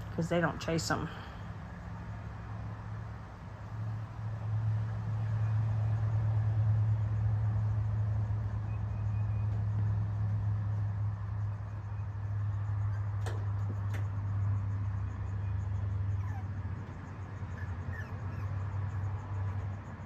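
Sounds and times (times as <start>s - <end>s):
puppies squeaking: 16.1s - 16.5s, 17.5s - 19.0s.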